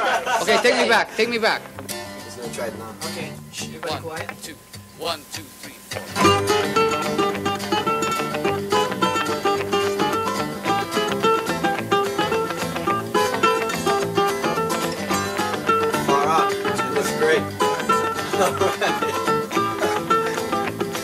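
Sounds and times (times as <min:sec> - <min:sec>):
fast picked string melody: 0:00.6 - 0:05.2, 0:05.9 - 0:21.0.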